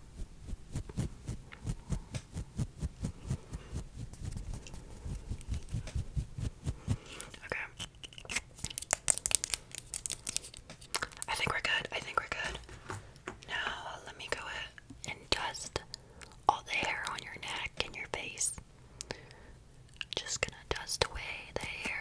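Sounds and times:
woman whispering: 7.3 - 7.8, 11.2 - 12.6, 13.5 - 15.9, 16.5 - 18.6, 20.2 - 22.0.

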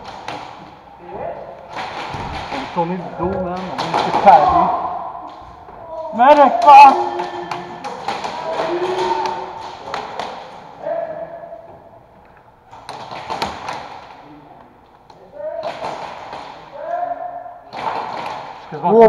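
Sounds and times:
indistinct voices in echoing room: 0.0 - 19.0
sharp taps and thuds: 1.7 - 4.8.

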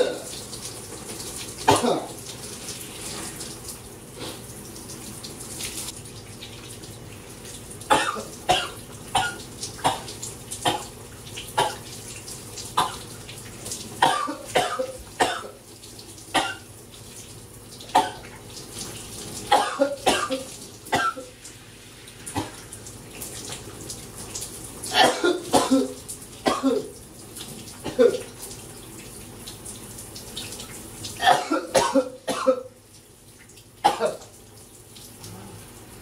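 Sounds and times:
running shower hiss: 0.0 - 15.4, 17.2 - 31.9
man coughing: 1.7 - 2.1, 14.0 - 15.5, 25.0 - 26.9, 27.8 - 28.3, 31.2 - 32.7.

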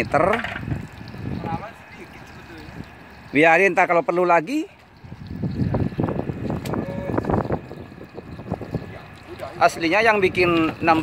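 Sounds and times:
wind buffeting microphone: 0.0 - 3.3, 4.9 - 11.0.

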